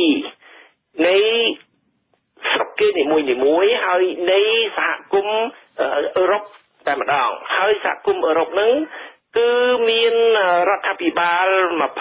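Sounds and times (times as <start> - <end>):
person reading radio news: 0.0 - 12.0.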